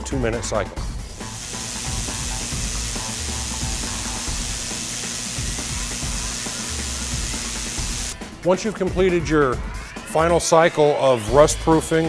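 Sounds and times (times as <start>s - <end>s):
ultrasonic cleaning tank hiss: 1.1s - 8.2s.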